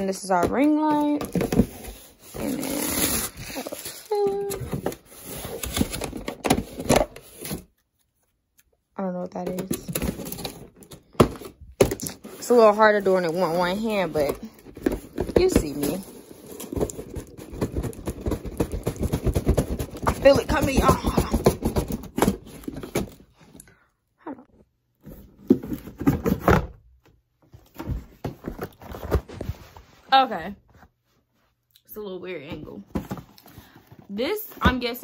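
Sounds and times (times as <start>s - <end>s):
cardboard packaging rustling: 0.2s - 8.3s, 9.4s - 23.6s, 27.6s - 30.1s.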